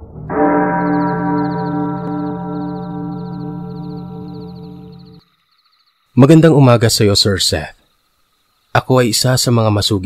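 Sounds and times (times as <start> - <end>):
deep gong ringing: 0.0 - 5.2.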